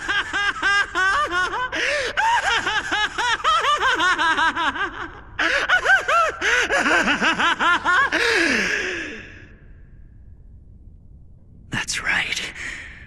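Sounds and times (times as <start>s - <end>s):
man laughing maniacally: 0.0s - 8.9s.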